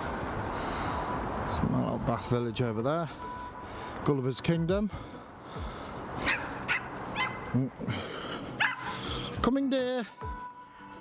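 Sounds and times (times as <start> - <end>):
dog yipping: 6.2 - 7.5, 8.6 - 8.9.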